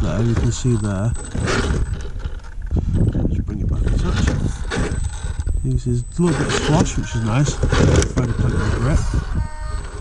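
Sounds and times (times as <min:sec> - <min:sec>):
electric motor whirring: 0:00.0 - 0:10.0
wind buffeting microphone: 0:00.0 - 0:10.0.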